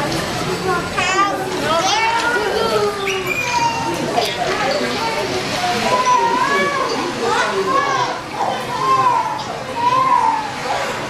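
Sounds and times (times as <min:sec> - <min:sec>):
children chattering and calling: 0:00.0 - 0:11.0
murmur of voices: 0:00.0 - 0:11.0.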